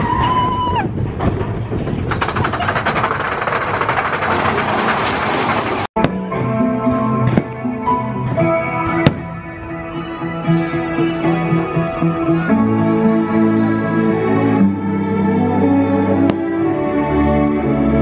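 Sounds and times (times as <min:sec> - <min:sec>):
dense crowd noise: 0:07.8 - 0:18.0.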